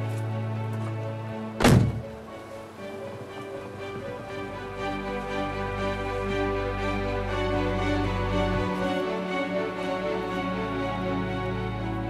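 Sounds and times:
music with long held notes: 0:00.0 - 0:12.0
car door shutting: 0:01.6 - 0:02.2.

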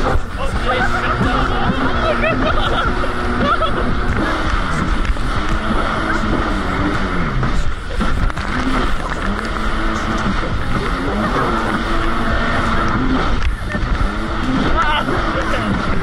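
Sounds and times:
people laughing and shouting: 0:00.0 - 0:04.8, 0:08.8 - 0:16.0
jet ski engine running: 0:00.0 - 0:16.0.

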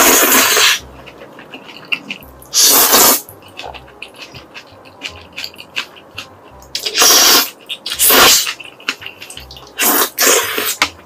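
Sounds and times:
loud noodle slurps: 0:00.0 - 0:00.8, 0:02.0 - 0:03.3, 0:06.8 - 0:08.6, 0:09.8 - 0:10.8.

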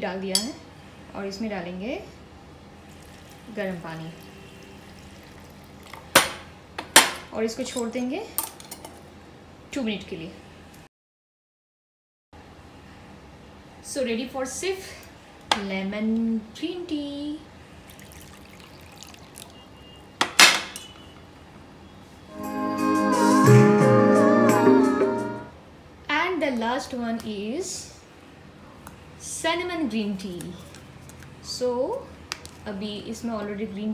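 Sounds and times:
tea pouring into glass cup: 0:02.9 - 0:03.6, 0:04.2 - 0:06.1, 0:17.9 - 0:19.6
hot water trickling into strainer: 0:02.9 - 0:06.1, 0:17.9 - 0:19.7.

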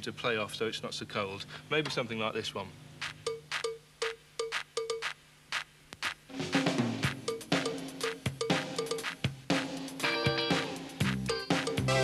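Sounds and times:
drum machine pattern: 0:01.8 - 0:02.1, 0:03.0 - 0:12.0
live drum kit playing: 0:03.0 - 0:12.0.

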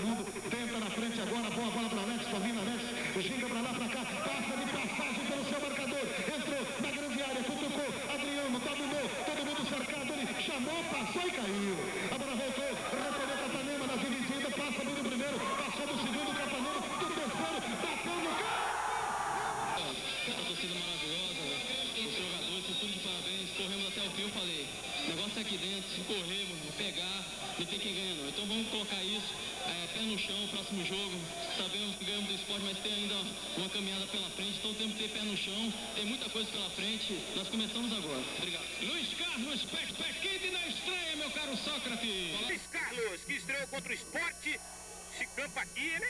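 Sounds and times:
man commentating: 0:00.0 - 0:18.8, 0:19.6 - 0:46.0.

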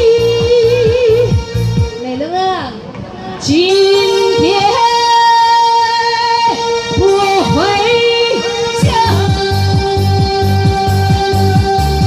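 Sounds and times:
backing music: 0:00.0 - 0:12.0
woman singing into microphone: 0:00.0 - 0:12.0.

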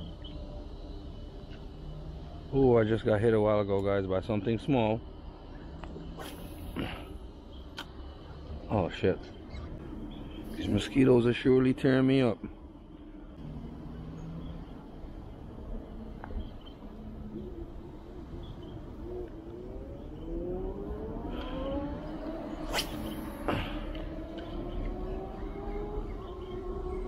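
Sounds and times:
engine speeding up: 0:13.4 - 0:15.6, 0:17.2 - 0:27.0.

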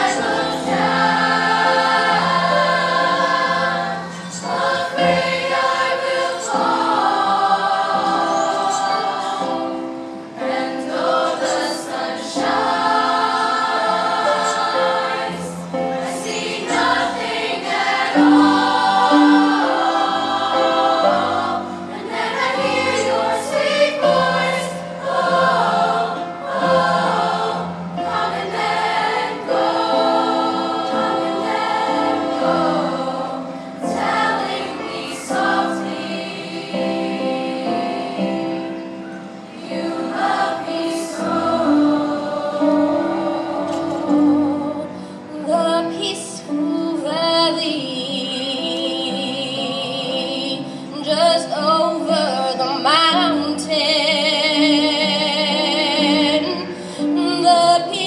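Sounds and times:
choir singing in harmony: 0:00.0 - 0:58.0.

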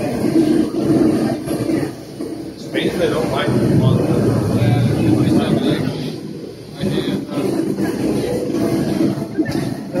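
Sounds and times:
indistinct voices talking: 0:00.0 - 0:10.0.

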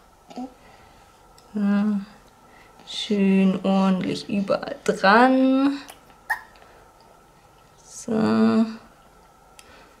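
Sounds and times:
baby hiccup: 0:06.3 - 0:06.5.

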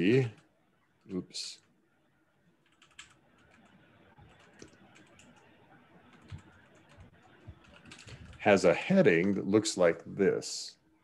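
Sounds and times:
faint keyboard typing: 0:02.6 - 0:10.1.

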